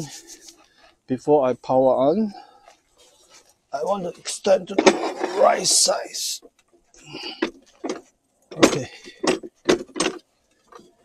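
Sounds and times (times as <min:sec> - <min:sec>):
metal frame rails knocking and rattling: 0:07.2 - 0:11.0.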